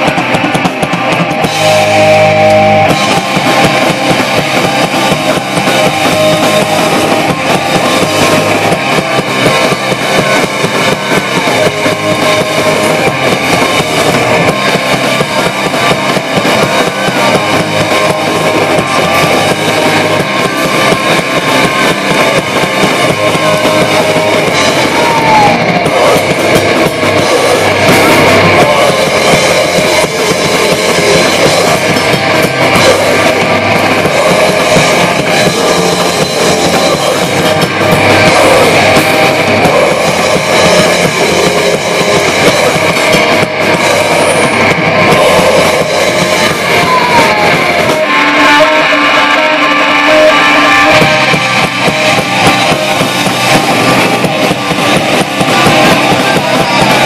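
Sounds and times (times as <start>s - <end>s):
drum kit: 0.0s - 57.0s
electric guitars: 0.0s - 57.0s.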